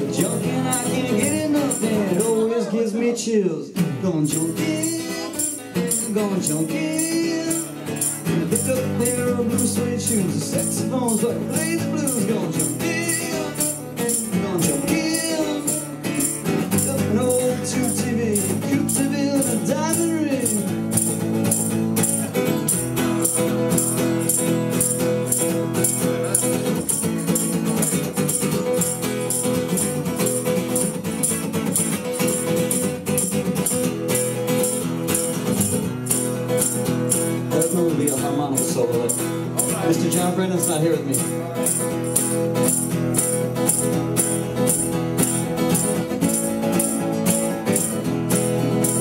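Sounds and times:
acoustic guitar strumming: 0.0s - 49.0s.

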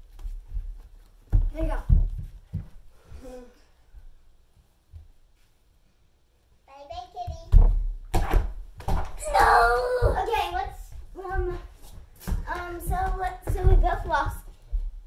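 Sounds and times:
thumps and footfalls on floor: 0.0s - 3.2s, 4.9s - 5.2s, 7.2s - 15.0s
children calling out and squealing: 9.2s - 10.5s.

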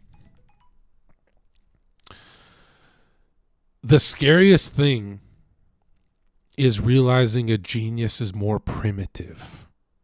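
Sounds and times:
man breathing out: 2.0s - 3.3s
man speaking: 3.8s - 5.2s, 6.6s - 9.6s.

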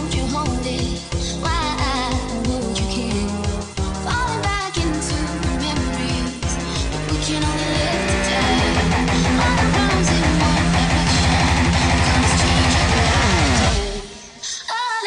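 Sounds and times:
drum and bass backing track: 0.0s - 14.4s
electric guitar: 5.8s - 14.5s.

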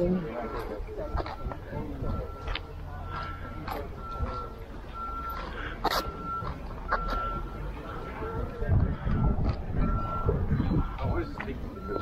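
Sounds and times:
electronic beeping: 0.0s - 12.0s.

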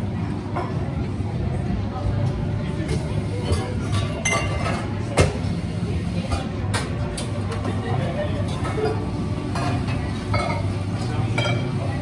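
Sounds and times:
low cafe hum: 0.0s - 12.0s
cups and crockery clinking: 2.9s - 5.5s, 6.3s - 12.0s.

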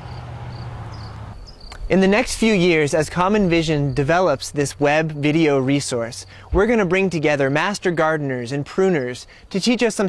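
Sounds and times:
insects chirping: 0.0s - 10.0s
low hum and hiss: 0.0s - 10.0s.

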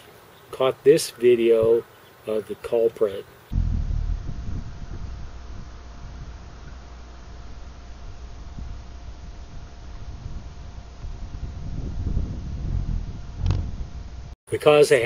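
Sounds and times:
wind rumbling on microphone: 3.6s - 14.4s.

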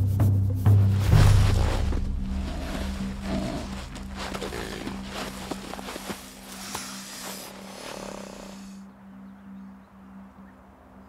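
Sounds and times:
low droning background music: 0.0s - 11.0s
animals scuffling on dry ground: 0.7s - 8.8s
reptile hiss: 2.4s - 8.8s.

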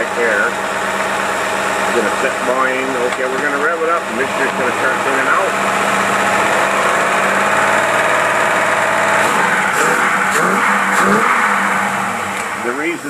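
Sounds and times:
revved engine running: 0.0s - 13.0s.

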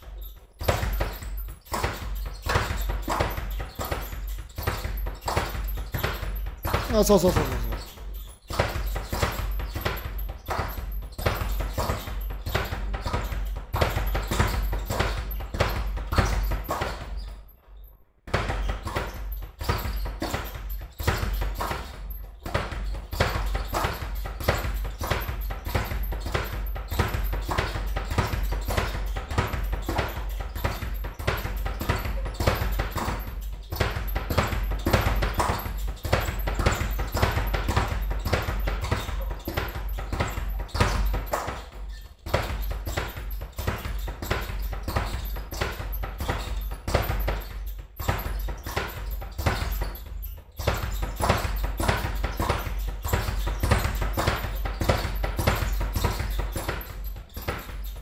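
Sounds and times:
speed bag knocking: 0.0s - 17.5s, 18.3s - 58.0s.

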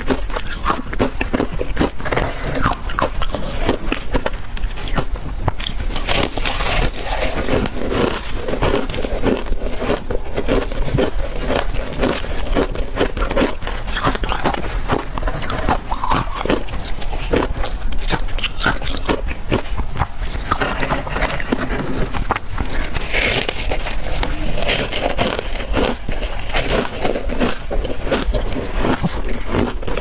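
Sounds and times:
crunching and chewing ice: 0.0s - 30.0s.

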